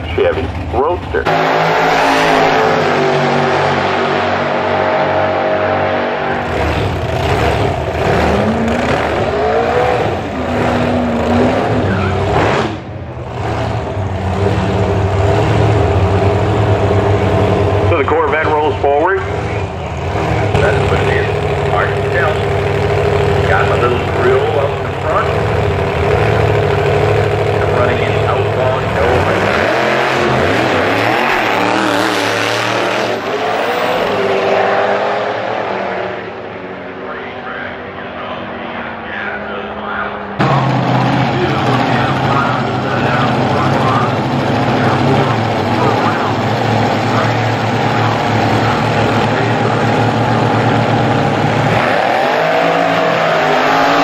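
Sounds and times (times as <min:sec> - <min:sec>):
drag car engine revving: 0:00.0 - 0:54.0.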